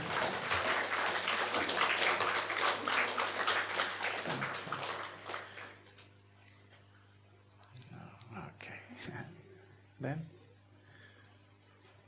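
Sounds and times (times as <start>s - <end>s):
audience applause: 0.0s - 6.1s.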